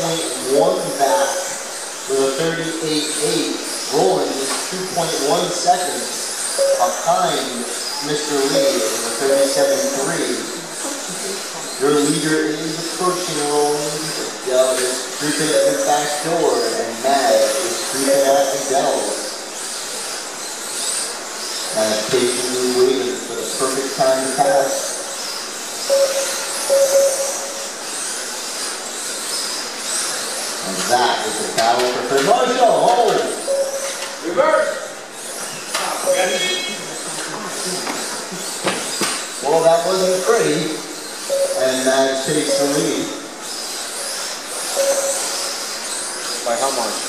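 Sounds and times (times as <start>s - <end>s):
rc car electric motor whine: 0.0s - 47.0s.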